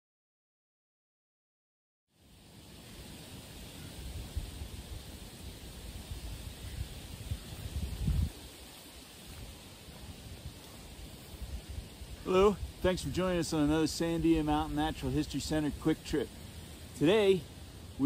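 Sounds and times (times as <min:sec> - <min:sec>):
wind rumbling on microphone: 0:02.8 - 0:18.0
footsteps on dry leaves: 0:05.9 - 0:12.8.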